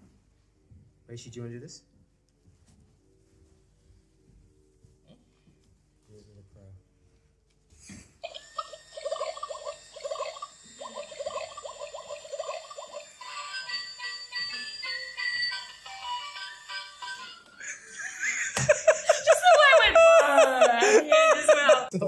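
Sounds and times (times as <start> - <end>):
toy gun warbling chirps: 8.3 - 15.1.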